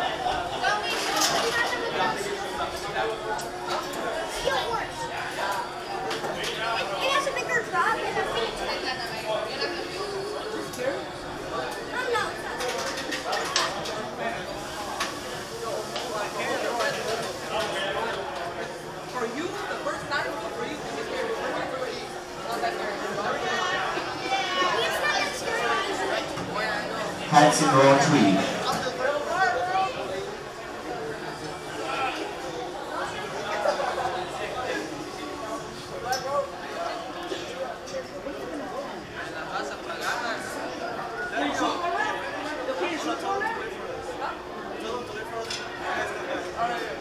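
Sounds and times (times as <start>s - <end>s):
chatter of people talking: 0.0s - 47.0s.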